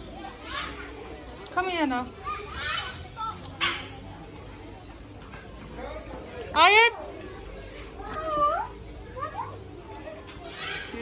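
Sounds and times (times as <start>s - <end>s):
children's voices: 0.0s - 11.0s.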